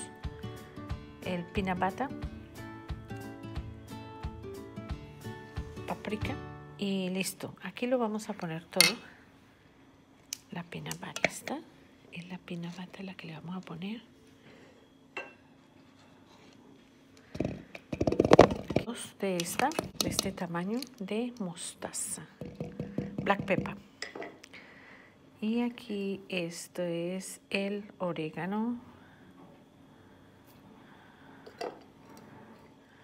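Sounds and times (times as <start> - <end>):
kitchenware clinking on bowl: 8.8 - 9.1, 11.1 - 11.5.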